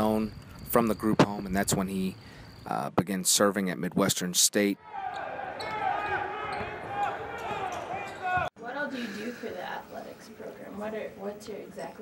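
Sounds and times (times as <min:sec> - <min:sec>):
sneaker squeaks: 0:05.0 - 0:08.5.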